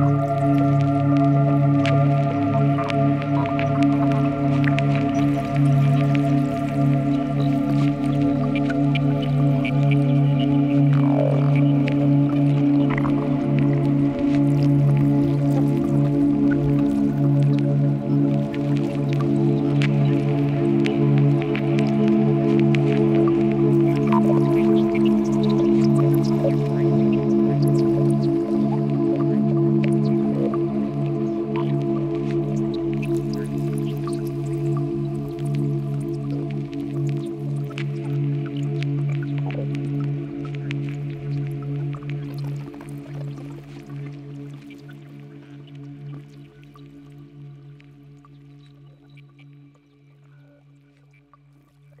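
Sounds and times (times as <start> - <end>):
low synthesizer drone chord: 0.0 - 42.0
synthesizer ticks and blips: 0.0 - 50.0.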